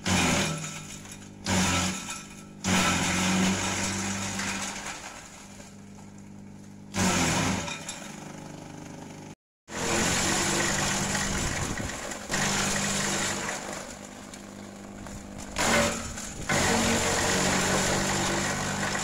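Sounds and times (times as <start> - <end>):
blades chopping leaves and stems: 0.0 - 19.0
shredder motor running: 0.0 - 19.0.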